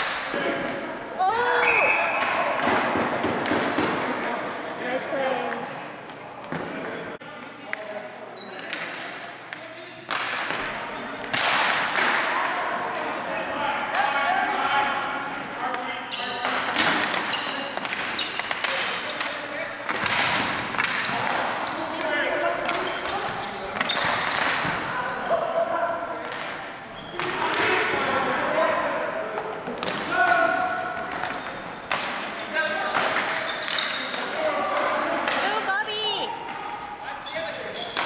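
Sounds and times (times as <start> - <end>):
hockey sticks clacking on ball: 8.5 - 13.1, 15.3 - 24.8, 26.2 - 28.0, 29.3 - 35.6, 37.8 - 38.0.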